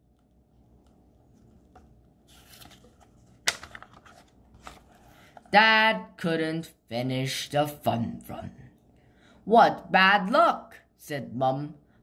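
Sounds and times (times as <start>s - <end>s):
paper page turning: 1.2s - 5.5s.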